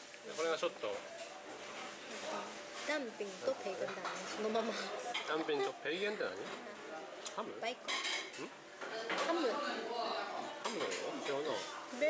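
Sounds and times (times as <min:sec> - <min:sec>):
chopsticks and dishes clinking: 0:07.8 - 0:09.4, 0:10.6 - 0:11.7.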